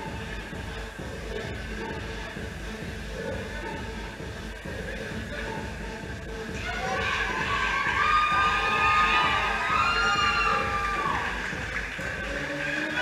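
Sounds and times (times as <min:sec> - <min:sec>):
crowd cheering and shouting: 0:06.5 - 0:13.0.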